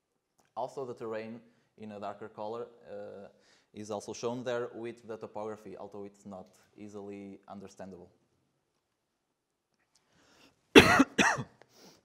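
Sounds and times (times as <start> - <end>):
man coughing into microphone: 10.8 - 11.5.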